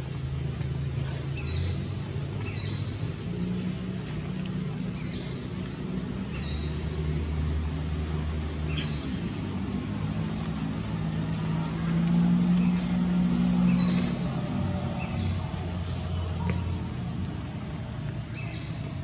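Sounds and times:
low steady motor hum: 0.0s - 19.0s.

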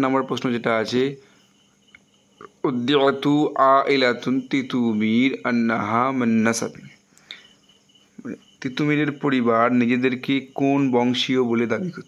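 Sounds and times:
man speaking: 0.0s - 1.2s, 2.4s - 7.0s, 8.2s - 12.0s.

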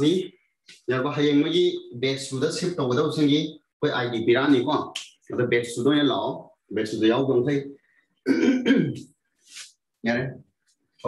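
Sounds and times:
man speaking: 0.0s - 10.4s.

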